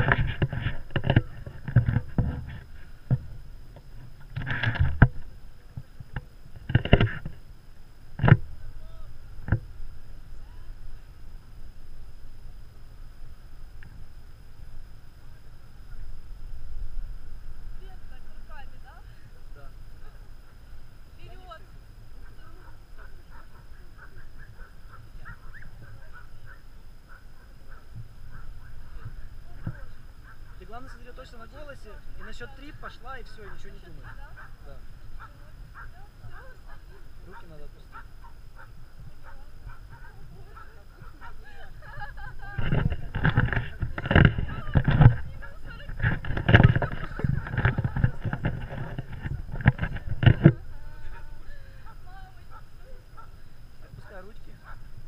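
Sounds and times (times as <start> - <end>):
wind rumbling on microphone: 0.0 - 55.0
faint wavering whistle tones: 18.2 - 30.6
wind on microphone: 37.9 - 55.0.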